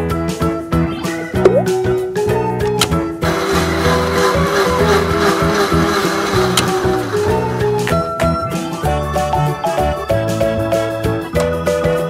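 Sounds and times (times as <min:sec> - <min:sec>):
upbeat background music: 0:00.0 - 0:12.0
toy blender motor whirring: 0:03.2 - 0:07.9
blender switch click: 0:06.4 - 0:07.0.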